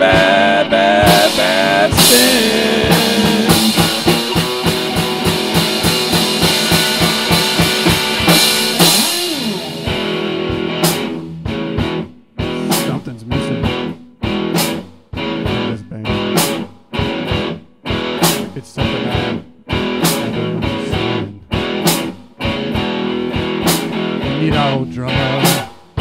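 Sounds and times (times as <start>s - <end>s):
choppy strummed guitar chords: 0.0s - 26.0s
rock guitar: 0.0s - 26.0s
steady drum beat: 0.0s - 26.0s.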